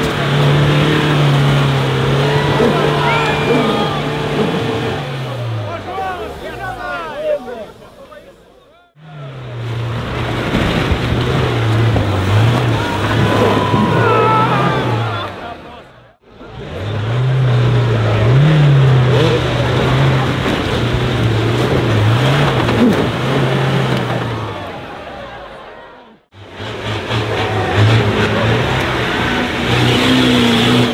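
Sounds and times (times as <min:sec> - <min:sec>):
truck engine revving under load: 0:00.0 - 0:08.0, 0:08.8 - 0:30.9.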